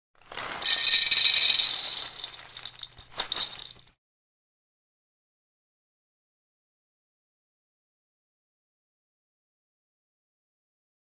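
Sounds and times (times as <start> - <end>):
scattered clicks and rattles: 0.3 - 3.9.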